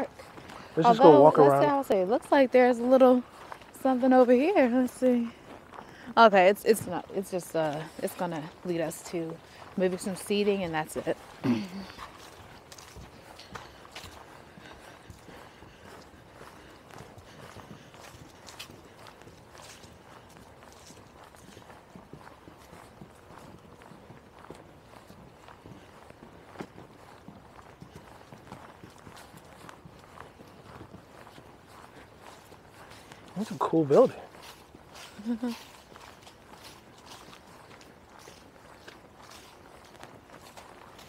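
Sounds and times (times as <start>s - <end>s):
footsteps on dry leaves: 6.5s - 41.0s.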